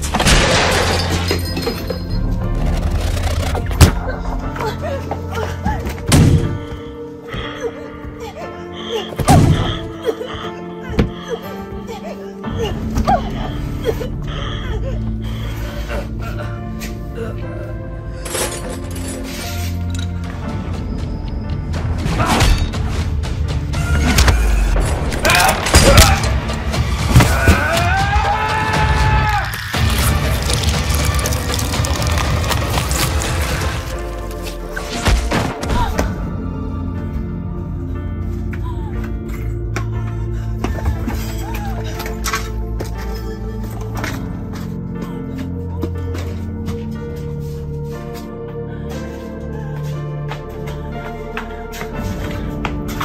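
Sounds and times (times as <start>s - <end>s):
film score music: 0.0s - 53.0s.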